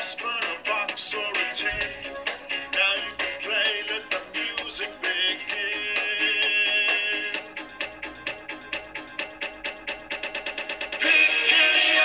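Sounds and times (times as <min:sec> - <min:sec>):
song with singing: 0:00.0 - 0:07.8, 0:11.0 - 0:12.0.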